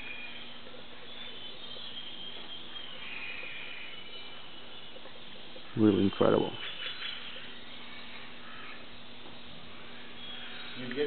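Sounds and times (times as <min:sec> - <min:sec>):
birds chirping and whistling: 0:00.0 - 0:11.0.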